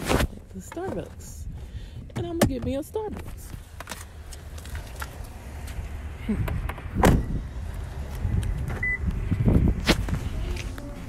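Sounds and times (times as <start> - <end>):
wind on microphone: 6.3 - 11.0
microphone handling rubs and knocks: 8.2 - 11.0.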